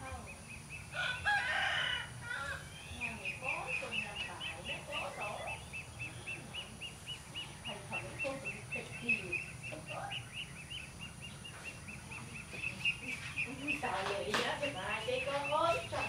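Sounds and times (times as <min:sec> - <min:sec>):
irregular mid-pitched calls: 0:01.8 - 0:16.0.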